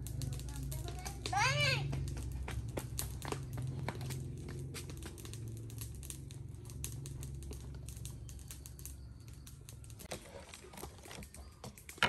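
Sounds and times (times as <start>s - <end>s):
steady low rumble: 0.0s - 10.1s.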